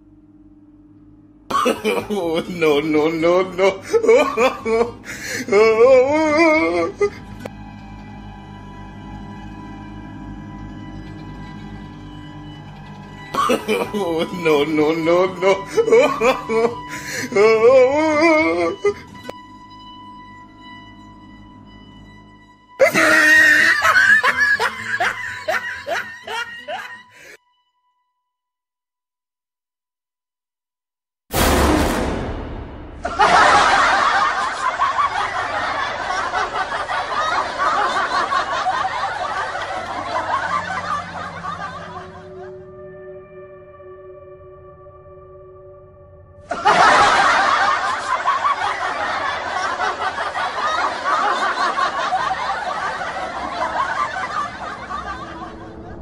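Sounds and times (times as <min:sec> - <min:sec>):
person laughing in bursts: 0:01.5 - 0:07.2, 0:13.3 - 0:19.0, 0:22.8 - 0:27.4, 0:33.0 - 0:42.6, 0:46.5 - 0:55.9.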